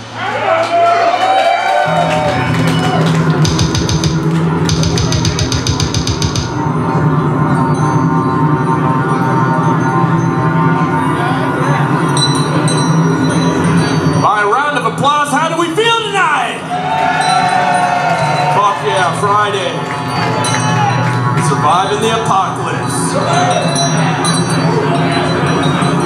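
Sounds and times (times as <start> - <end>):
distorted guitars and bass: 1.9 - 15.1, 18.9 - 26.0
fast drum strokes and cymbals: 3.4 - 6.6.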